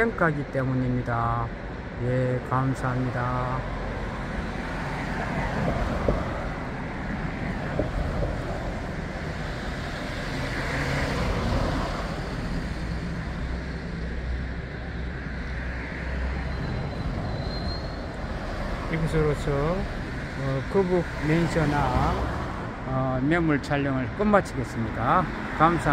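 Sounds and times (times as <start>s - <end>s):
passing vehicles engine rumble: 0.0s - 25.9s.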